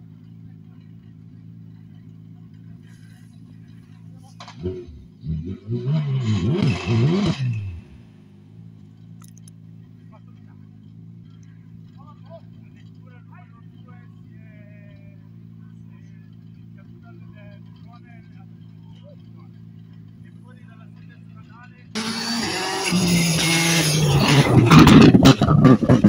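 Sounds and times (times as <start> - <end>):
car engine idling: 0.0 - 26.0
rally car engine revving: 0.0 - 26.0
people talking: 0.4 - 1.4, 2.4 - 4.9, 10.0 - 10.7, 11.4 - 22.0.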